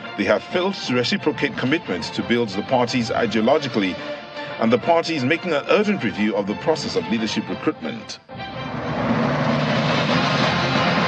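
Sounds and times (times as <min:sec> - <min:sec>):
low theme music notes: 0:00.0 - 0:11.0
whooshing noise: 0:08.6 - 0:11.0.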